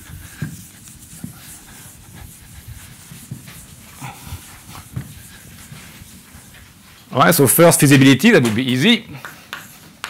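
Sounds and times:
eraser rubbing on chalkboard: 0.0s - 7.1s.

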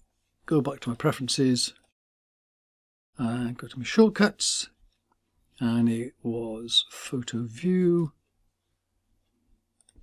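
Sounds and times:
faint computer mouse clicks: 9.8s - 10.0s.

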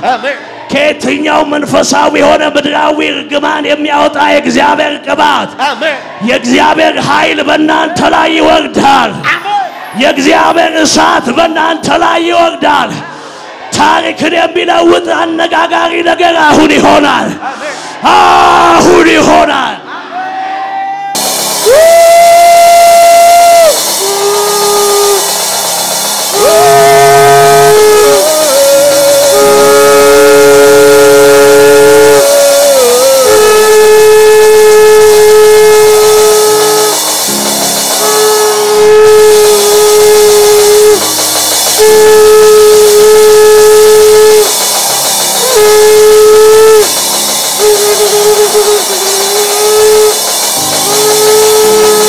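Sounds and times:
shofar blasts: 21.2s - 52.0s.

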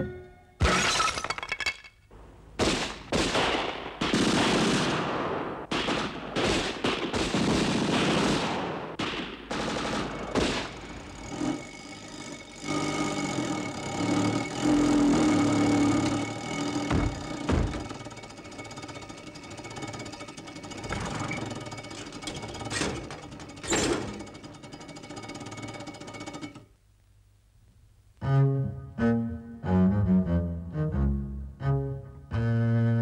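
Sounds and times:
sharp engine bangs: 2.5s - 11.6s.

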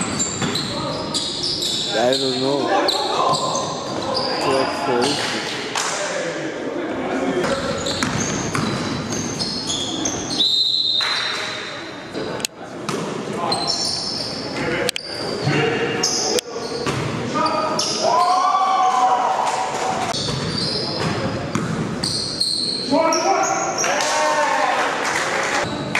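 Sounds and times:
sneakers squeaking on hardwood: 0.0s - 4.6s, 7.4s - 11.4s, 13.5s - 18.1s, 20.1s - 23.9s
basketball bouncing: 7.4s - 9.0s, 20.2s - 22.1s.

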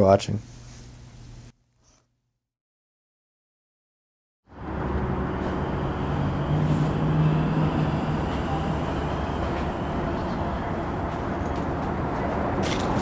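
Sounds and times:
traffic noise with low hum: 4.5s - 13.0s.

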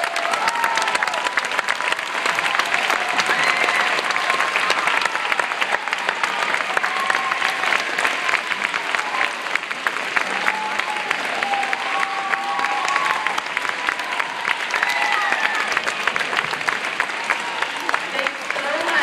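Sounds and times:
children clapping: 0.0s - 19.0s.

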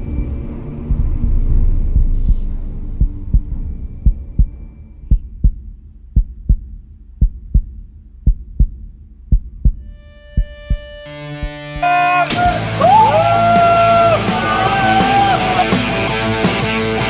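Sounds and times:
low rumbling drone: 0.0s - 11.1s
heartbeat thumps: 0.0s - 11.8s.

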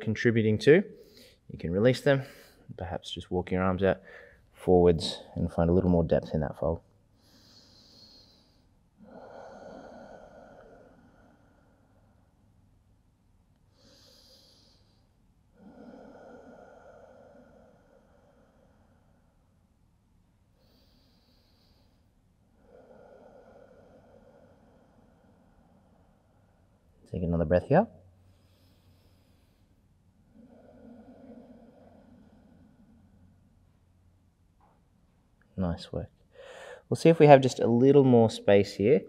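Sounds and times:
man breathing: 0.9s - 1.5s, 4.0s - 5.4s, 6.9s - 12.8s, 13.6s - 19.8s, 20.5s - 27.1s, 28.0s - 35.5s, 36.2s - 36.9s
person exhaling: 7.2s - 12.4s, 13.8s - 19.5s, 20.6s - 27.0s, 28.3s - 34.0s, 36.4s - 36.9s.

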